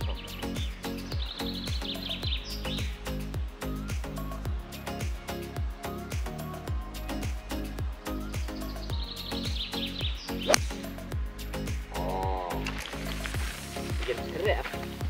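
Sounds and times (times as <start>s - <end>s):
background music with beat: 0.0s - 15.0s
golf driver striking ball: 10.5s - 10.9s.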